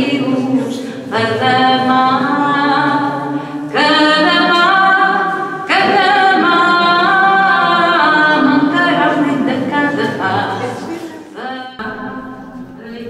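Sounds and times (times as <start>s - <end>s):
choir singing unaccompanied: 0.0s - 13.0s.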